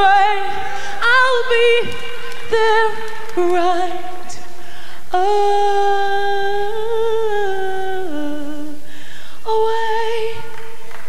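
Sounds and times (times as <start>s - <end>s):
woman singing gospel: 0.0s - 11.0s.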